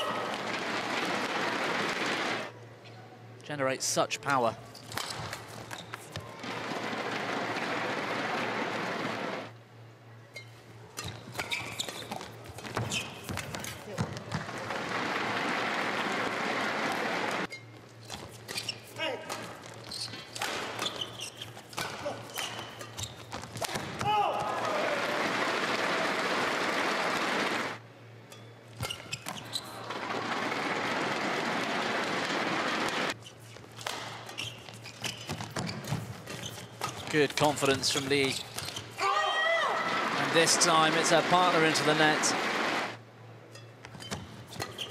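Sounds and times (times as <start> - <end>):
shoe squeaks on court: 4.7 - 6.3, 10.4 - 13.8, 17.5 - 19.0, 19.8 - 23.5, 28.8 - 29.8, 33.2 - 39.0, 43.9 - 44.9
racket striking shuttlecock: 21.6 - 24.6
crowd cheering and applause: 24.2 - 27.8.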